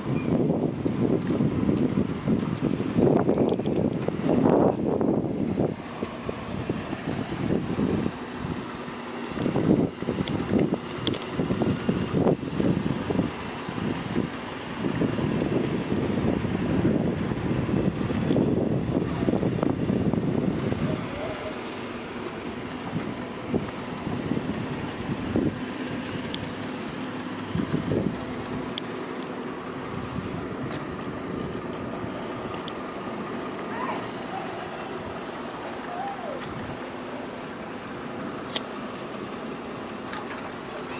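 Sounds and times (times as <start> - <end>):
wind buffeting microphone: 0.0 - 35.5.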